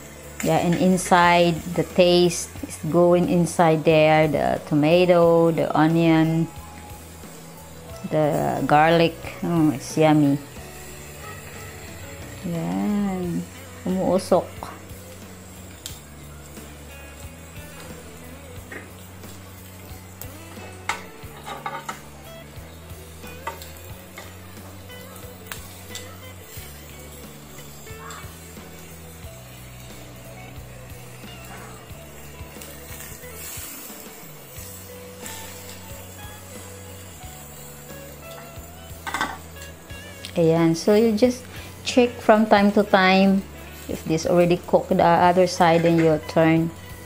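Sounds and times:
background music with bass line: 0.0s - 47.0s
squid sizzling on grill pan: 0.0s - 47.0s.

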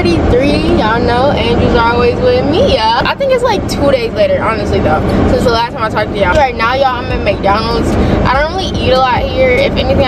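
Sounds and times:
car hum: 0.0s - 10.0s
woman talking: 0.0s - 10.0s.

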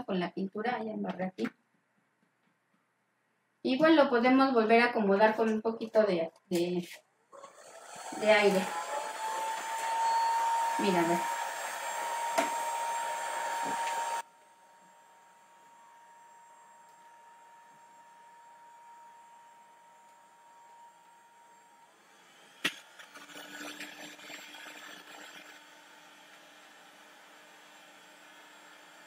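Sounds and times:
heat gun fan whine: 7.4s - 23.0s, 25.6s - 29.0s.

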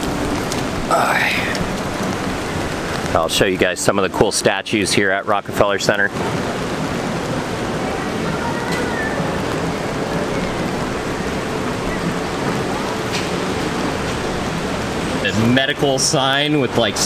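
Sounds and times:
steady rain falling: 0.0s - 17.0s.

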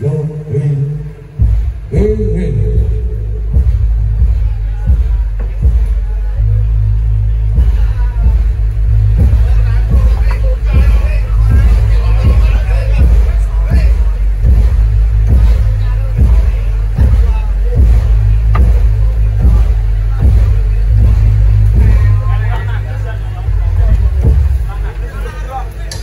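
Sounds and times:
drum strokes: 1.2s - 25.1s.

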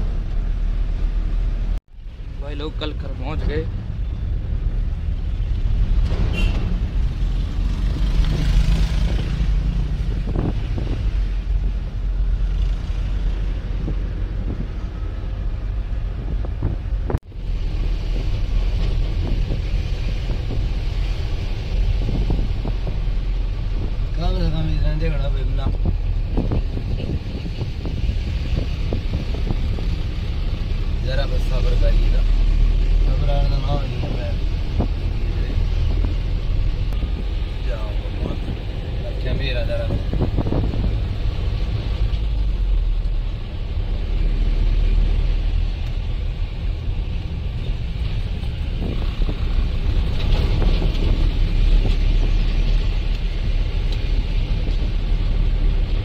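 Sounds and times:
car engine and road noise: 0.0s - 56.0s.

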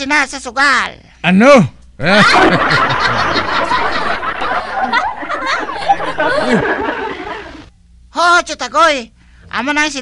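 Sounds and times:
people laughing: 2.0s - 7.7s.

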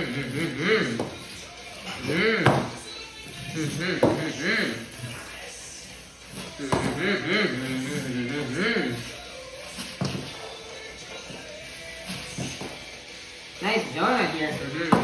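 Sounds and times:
boy humming: 6.5s - 9.2s.

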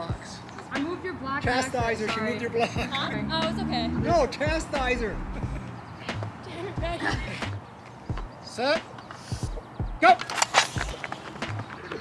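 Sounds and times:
footsteps on rubber track: 8.1s - 8.4s.

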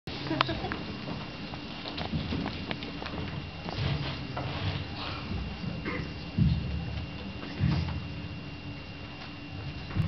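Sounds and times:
footsteps and knocks on a stage: 0.7s - 10.0s.

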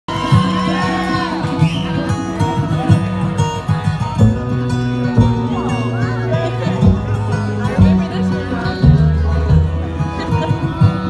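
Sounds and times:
acoustic guitar: 0.1s - 11.0s
sliding lead melody on plucked strings: 0.1s - 11.0s
upright bass: 0.1s - 11.0s.

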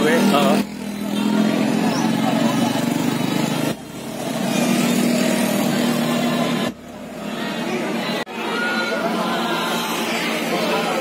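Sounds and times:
motor scooter engine passing: 0.0s - 8.2s.

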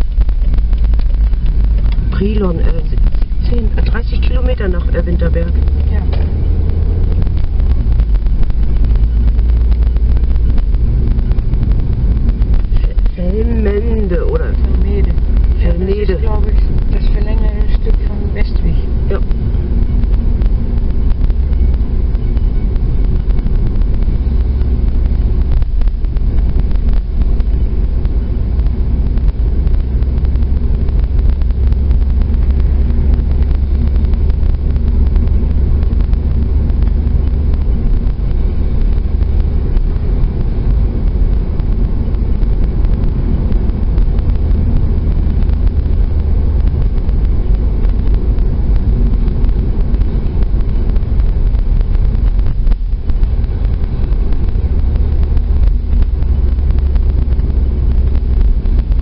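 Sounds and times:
car engine and tyre rumble: 0.0s - 59.0s.

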